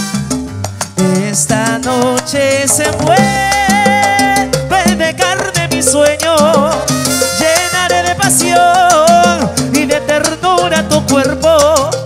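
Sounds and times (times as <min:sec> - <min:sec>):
salsa band playing: 0:00.0 - 0:12.0.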